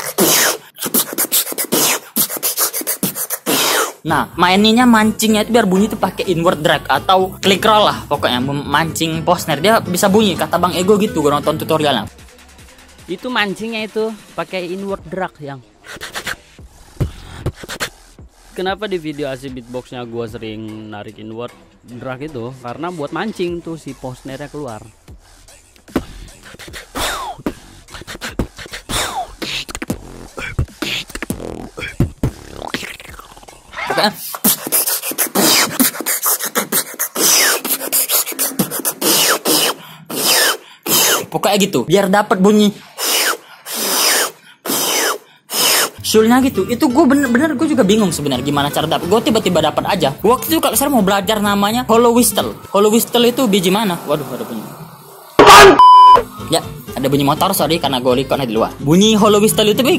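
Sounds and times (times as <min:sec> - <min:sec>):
beatboxer's mouth snare hits: 0:00.0 - 0:04.0, 0:15.8 - 0:18.1, 0:25.8 - 0:33.5, 0:34.3 - 0:41.3, 0:55.4 - 0:55.8.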